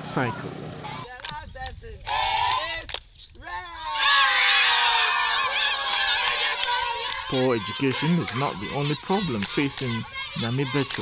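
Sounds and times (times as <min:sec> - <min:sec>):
young children singing: 0:05.4 - 0:11.0.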